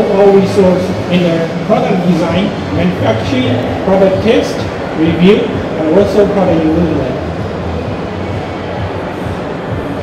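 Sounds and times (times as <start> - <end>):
murmur of noise: 0.0 - 10.0.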